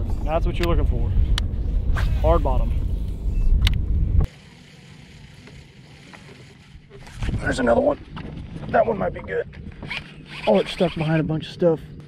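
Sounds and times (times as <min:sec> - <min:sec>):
wind rumbling on microphone: 0:00.0 - 0:04.3, 0:07.0 - 0:12.0.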